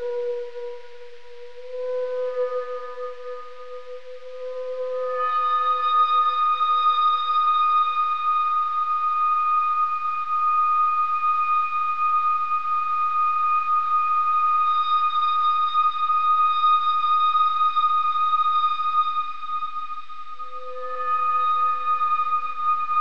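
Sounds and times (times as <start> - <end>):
high whistling tone: 0.0 - 23.0
soft hiss: 0.0 - 23.0.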